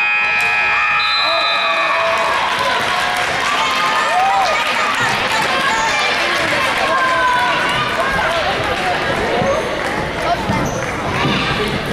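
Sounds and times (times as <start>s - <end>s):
crowd chatter: 0.0s - 11.9s.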